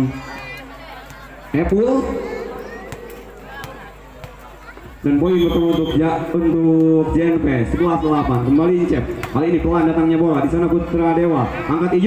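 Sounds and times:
crowd noise: 0:00.0 - 0:12.0
male commentator calling out: 0:05.1 - 0:12.0.

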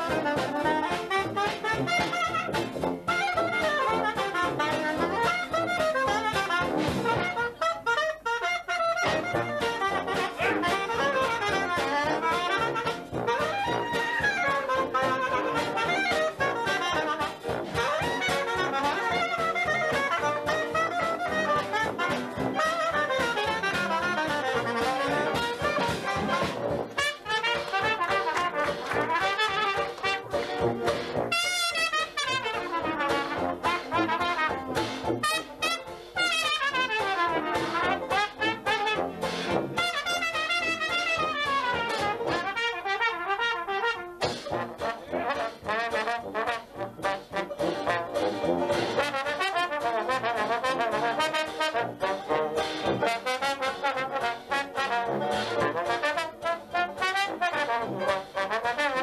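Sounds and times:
banjo: 0:00.0 - 0:59.0
piano and drums: 0:00.0 - 0:59.0
trombone: 0:00.0 - 0:59.0
soprano saxophone: 0:07.1 - 0:17.1
sousaphone: 0:10.1 - 0:11.4.

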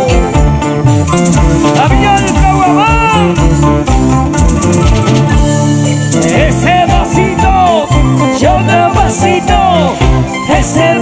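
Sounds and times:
live band playing: 0:00.0 - 0:11.0
steady low beat: 0:00.1 - 0:10.7
person singing: 0:06.1 - 0:11.0.

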